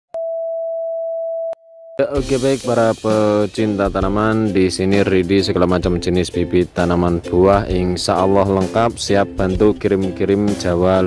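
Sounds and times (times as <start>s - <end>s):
steady test tone beep: 0.2s - 2.0s.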